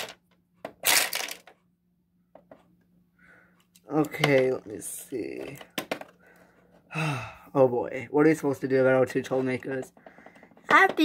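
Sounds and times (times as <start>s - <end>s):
plastic toy figure clattering: 0.0s - 1.6s, 5.4s - 6.2s.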